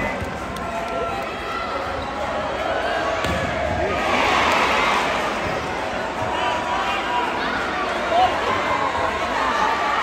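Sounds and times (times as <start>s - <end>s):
crowd chatter and calls: 0.0s - 10.0s.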